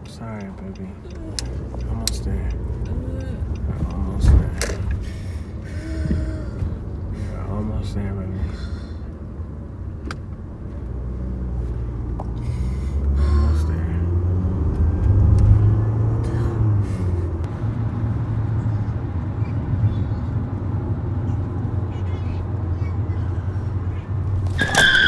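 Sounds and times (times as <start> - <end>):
car cabin road rumble: 0.0 - 25.0
woman breathing heavily: 4.9 - 7.5, 8.4 - 9.2, 12.4 - 13.4, 16.2 - 17.5.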